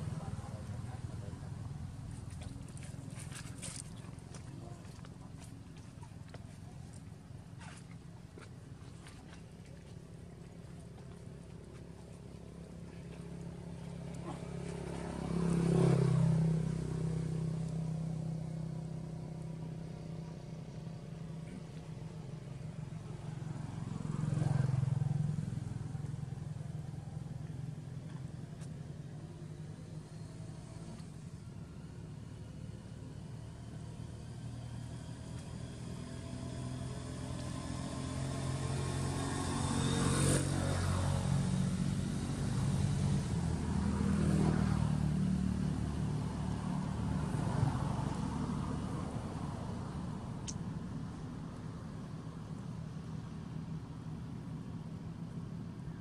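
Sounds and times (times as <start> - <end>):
vehicles passing: 0.0 - 56.0.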